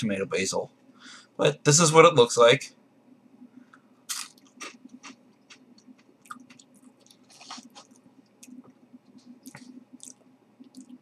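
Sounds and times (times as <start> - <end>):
person crunching a crisp: 4.1 - 8.6.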